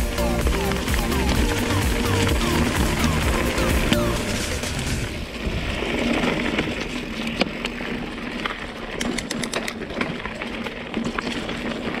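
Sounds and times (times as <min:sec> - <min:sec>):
bike rattling and clicking: 0:00.0 - 0:12.0
bike tyres on dirt and leaves: 0:00.0 - 0:12.0.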